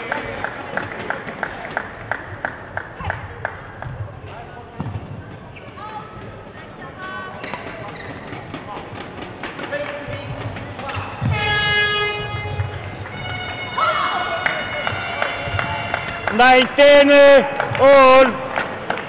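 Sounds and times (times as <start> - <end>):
sneakers squeaking on court floor: 4.8 - 9.0.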